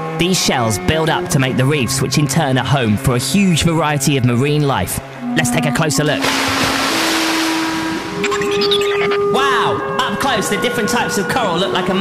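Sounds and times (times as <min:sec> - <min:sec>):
background music with held notes: 0:00.0 - 0:12.0
rushing water and bubbling: 0:06.2 - 0:09.1.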